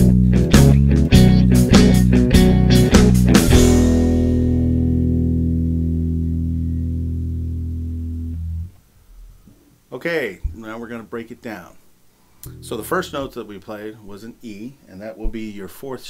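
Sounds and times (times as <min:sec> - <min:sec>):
electric bass line: 0:00.0 - 0:08.8, 0:12.4 - 0:13.4
guitar and drums: 0:00.0 - 0:09.7, 0:12.4 - 0:13.5.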